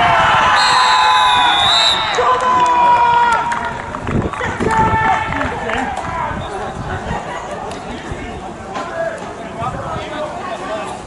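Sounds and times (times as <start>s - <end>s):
players and spectators shouting: 0.0s - 11.0s
referee's whistle blast: 0.6s - 2.2s.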